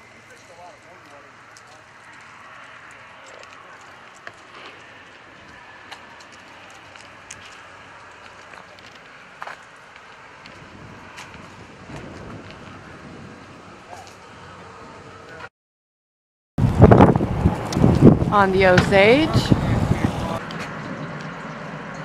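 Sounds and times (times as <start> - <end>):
faint outdoor background noise: 0.0 - 15.5.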